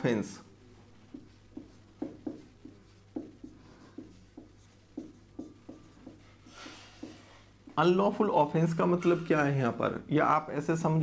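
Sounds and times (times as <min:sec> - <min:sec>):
marker writing on whiteboard: 0:00.8 - 0:08.2.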